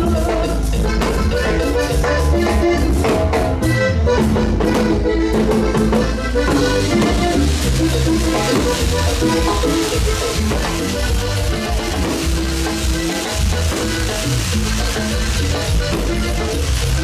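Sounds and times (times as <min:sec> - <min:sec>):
button accordion: 0:00.0 - 0:17.0
electric bass: 0:00.0 - 0:17.0
hand percussion: 0:00.0 - 0:17.0.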